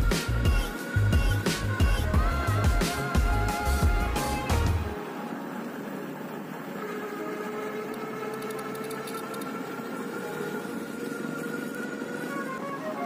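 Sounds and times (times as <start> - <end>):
electric motor whining: 0.0 - 13.0.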